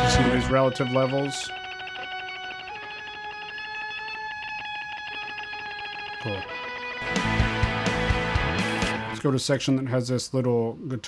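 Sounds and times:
rock band with drums: 0.0s - 0.8s, 6.5s - 9.2s
held ringing notes: 0.0s - 7.0s.

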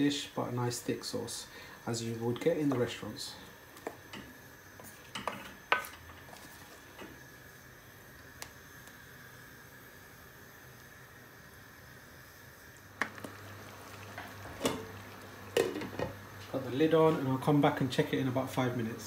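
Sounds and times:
sauce simmering hiss: 0.0s - 19.0s.

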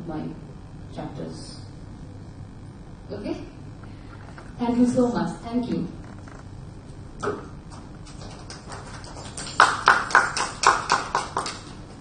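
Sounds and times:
audience hand clapping: 8.0s - 11.8s.

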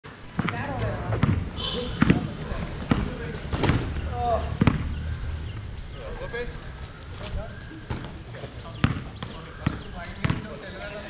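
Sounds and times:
basketball bouncing on concrete: 0.3s - 5.0s, 7.9s - 10.6s.

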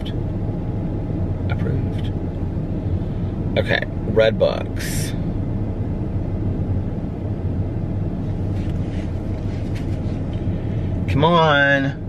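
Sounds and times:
car engine idling hum: 0.0s - 12.0s.

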